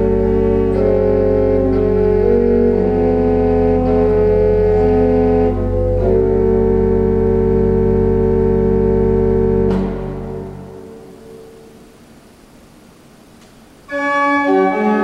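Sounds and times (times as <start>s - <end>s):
pipe organ chord: 0.0s - 12.1s, 13.9s - 15.0s.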